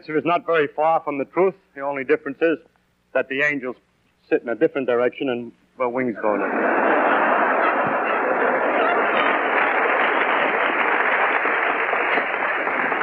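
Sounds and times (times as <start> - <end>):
audience laughing: 6.1 - 13.0
audience applauding: 6.3 - 13.0.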